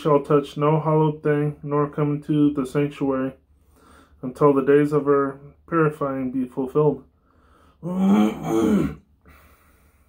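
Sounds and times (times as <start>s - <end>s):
faint breath out: 7.2s - 7.9s.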